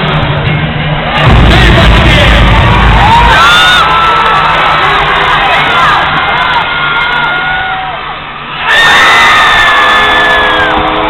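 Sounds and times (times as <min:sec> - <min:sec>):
crowd cheering and shouting: 0:00.0 - 0:11.0
whoops and yells: 0:02.9 - 0:04.7, 0:06.4 - 0:08.0, 0:08.6 - 0:10.9.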